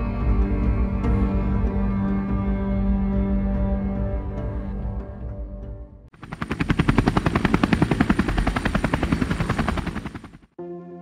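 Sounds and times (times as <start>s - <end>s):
helicopter rotor chop: 6.2s - 10.5s.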